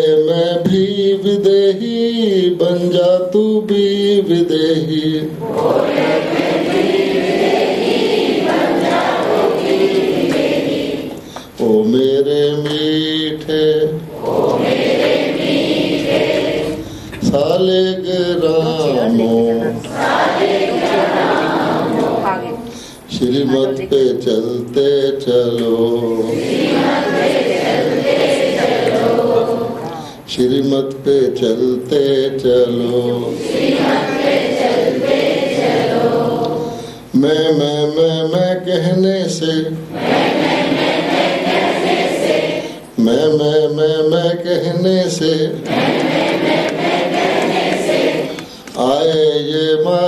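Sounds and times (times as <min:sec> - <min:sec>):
group singing devotional song: 0:00.0 - 0:50.0
leader singing: 0:00.0 - 0:50.0.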